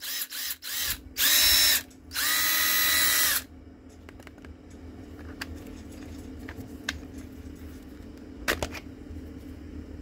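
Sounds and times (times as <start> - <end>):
impact driver motor whining: 0.0 - 3.4.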